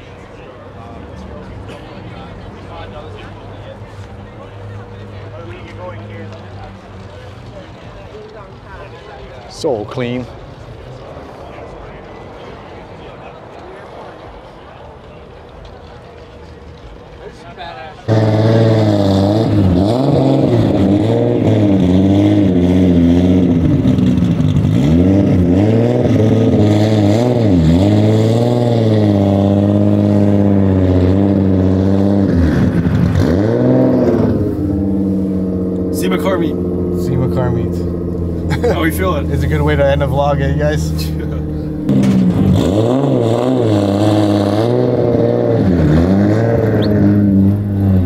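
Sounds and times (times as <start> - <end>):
car engines revving: 0.0 - 48.0.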